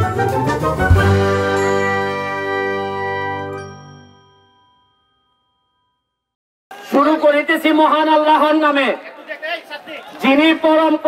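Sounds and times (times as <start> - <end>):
bright bell-like chord: 1.4 - 6.3.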